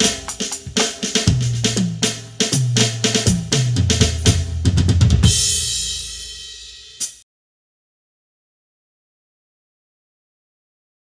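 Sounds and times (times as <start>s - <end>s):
electronic drum kit hits: 0.0s - 7.2s.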